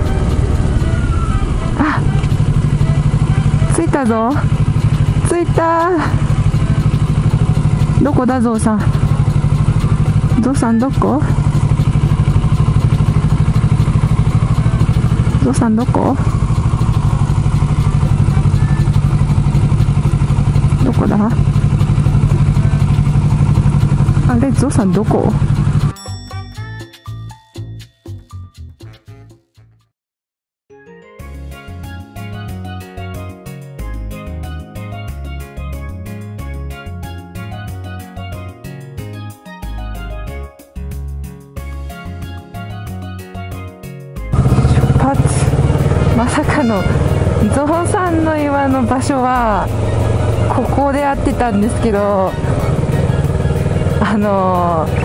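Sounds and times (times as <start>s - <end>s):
motorcycle engine at low revs: 0.0s - 25.9s, 44.3s - 55.0s.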